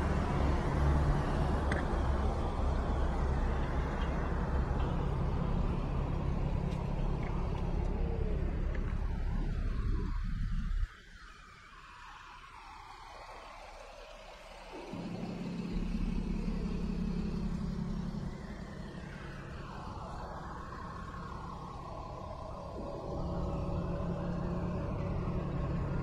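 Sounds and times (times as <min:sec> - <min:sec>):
bus engine hum: 0:00.0 - 0:26.0
street traffic rumbling: 0:00.0 - 0:26.0.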